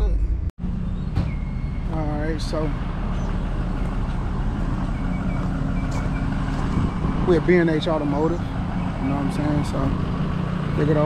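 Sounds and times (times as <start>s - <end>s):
car engine idling: 0.6s - 11.0s.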